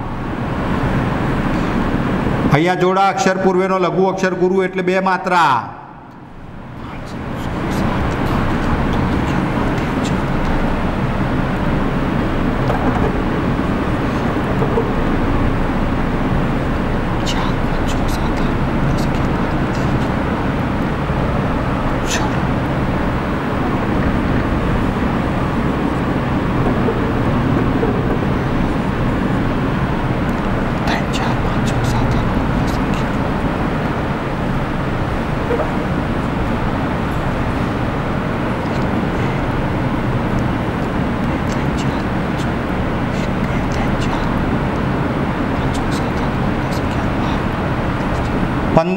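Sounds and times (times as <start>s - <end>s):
loud background noise: 0.0s - 48.9s
marker writing on whiteboard: 23.6s - 29.0s, 35.4s - 36.3s.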